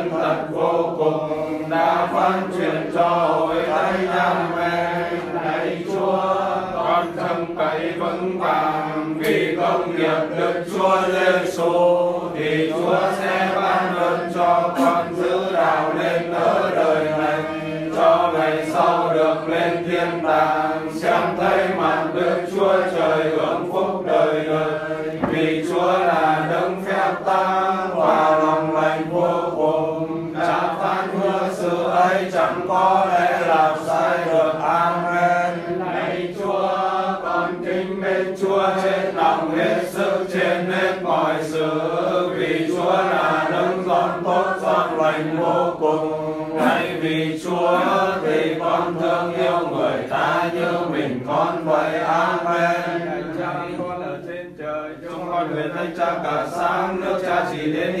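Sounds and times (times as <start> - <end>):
voices chanting prayers: 0.0 - 58.0.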